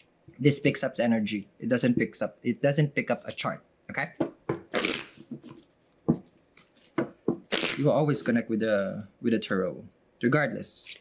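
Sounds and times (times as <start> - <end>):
cards being shuffled: 4.7 - 5.8, 6.6 - 7.9.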